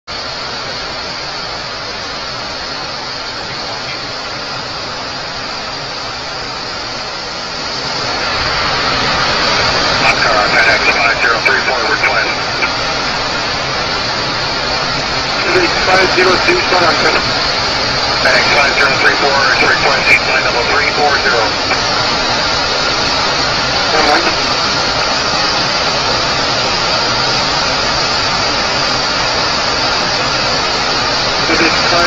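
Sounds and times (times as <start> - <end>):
jet cabin air and engine noise: 0.1 - 32.0
muffled radio voice: 10.0 - 12.7, 15.4 - 17.2, 18.2 - 21.8, 23.8 - 24.4, 31.4 - 32.0.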